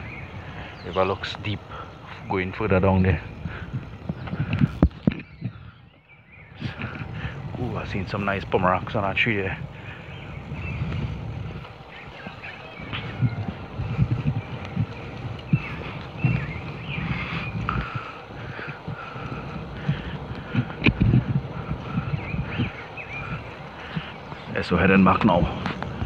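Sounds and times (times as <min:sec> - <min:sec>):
bicycle tyre rumble on wet road: 0:00.0 - 0:26.0
wind buffeting microphone: 0:00.0 - 0:26.0.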